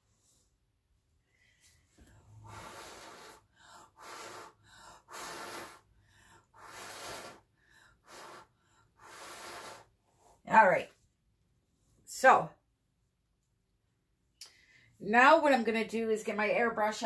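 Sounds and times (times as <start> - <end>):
person blowing hard puffs of breath: 1.6 - 10.4.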